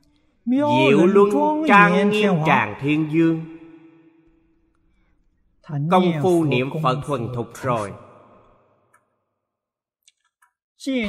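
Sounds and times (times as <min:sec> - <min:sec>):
man's voice: 0:00.5 - 0:03.6, 0:05.7 - 0:08.0.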